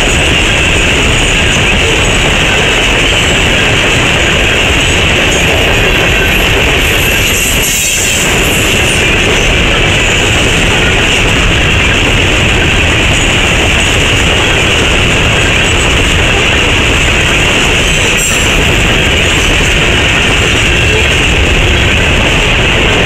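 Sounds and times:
train wheels rumbling on rail: 0.0s - 23.0s.

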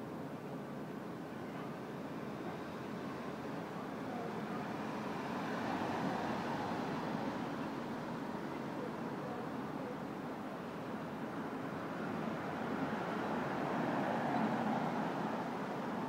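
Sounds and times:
city traffic rumble: 0.0s - 16.0s.

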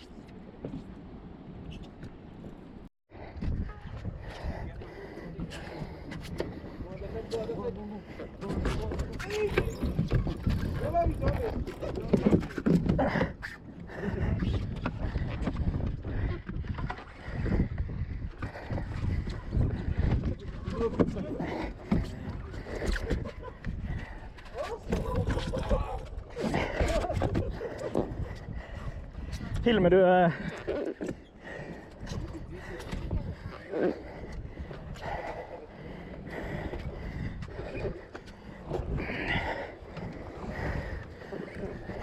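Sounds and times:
sea and boat rumble: 0.0s - 42.0s.

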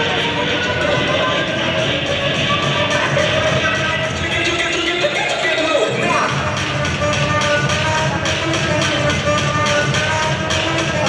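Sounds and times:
dance music over sound system: 0.0s - 11.0s.

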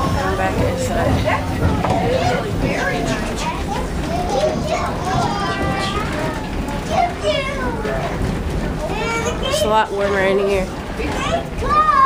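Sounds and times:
train rumble: 0.0s - 11.6s
children chattering: 0.0s - 12.0s.

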